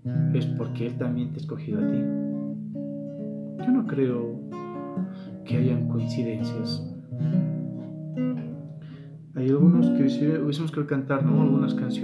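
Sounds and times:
classical guitar strummed softly: 0:00.0 - 0:12.0.

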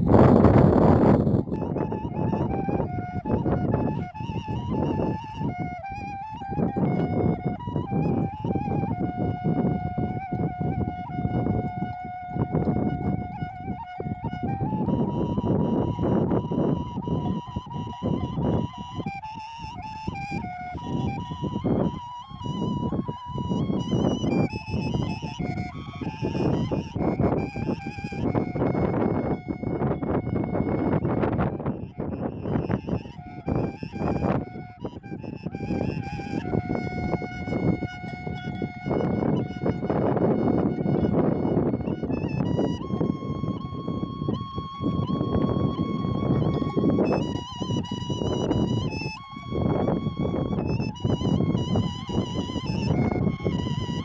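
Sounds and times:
wooden flute melody: 0:00.0 - 0:54.0.

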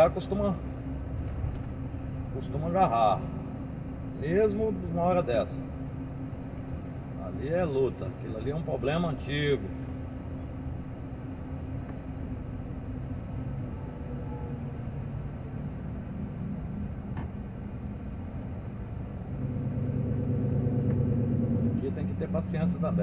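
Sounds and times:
truck engine and road noise: 0:00.0 - 0:23.0.

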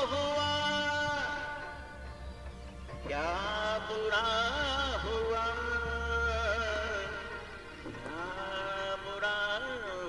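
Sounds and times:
man singing into microphone: 0:00.0 - 0:02.0, 0:02.9 - 0:10.0.

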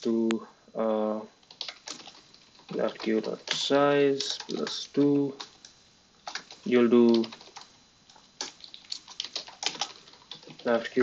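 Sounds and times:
computer keyboard typing: 0:01.4 - 0:11.0.

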